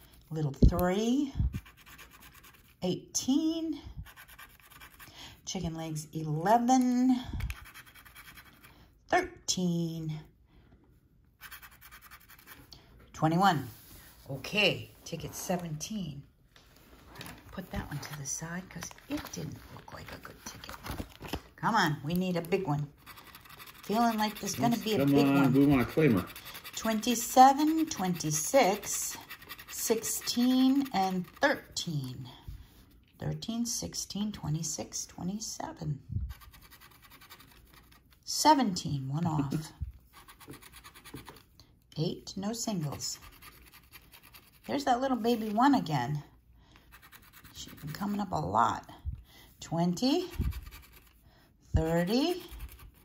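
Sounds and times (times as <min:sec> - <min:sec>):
scratching lottery ticket: 0:01.5 - 0:02.9, 0:04.0 - 0:05.2, 0:07.5 - 0:08.8, 0:11.4 - 0:12.8, 0:17.6 - 0:20.6, 0:21.8 - 0:32.1, 0:36.2 - 0:38.8, 0:40.1 - 0:41.5, 0:42.4 - 0:46.2, 0:46.8 - 0:48.4, 0:49.8 - 0:51.2, 0:51.8 - 0:53.0
person speaking: 0:17.5 - 0:32.4, 0:38.2 - 0:39.9
plastic tool scraping a ticket: 0:22.0 - 0:31.8.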